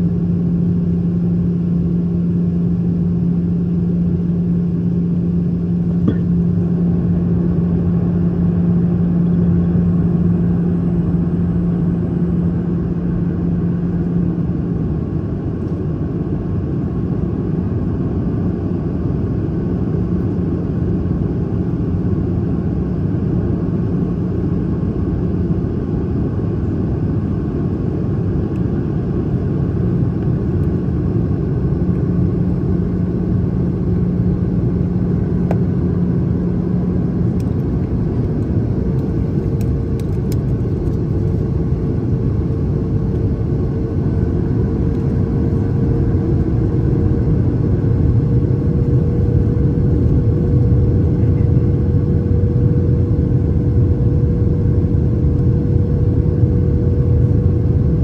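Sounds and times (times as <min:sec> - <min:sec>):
jet cabin engine roar: 0:00.0 - 0:58.0
low hum: 0:00.0 - 0:58.0.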